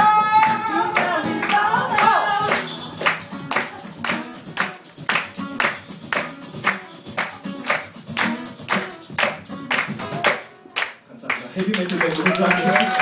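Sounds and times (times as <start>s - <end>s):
acoustic guitar strumming: 0.0s - 11.0s
sharp percussive hits: 2.4s - 10.6s.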